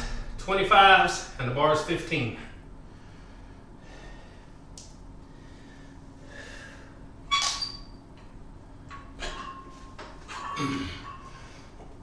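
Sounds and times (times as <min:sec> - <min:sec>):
low steady hum: 0:00.0 - 0:12.0
weight plates clanking: 0:08.9 - 0:11.6.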